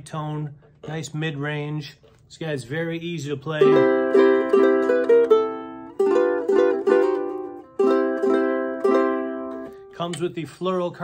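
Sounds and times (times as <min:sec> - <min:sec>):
ukulele plucked chords: 0:03.5 - 0:10.3.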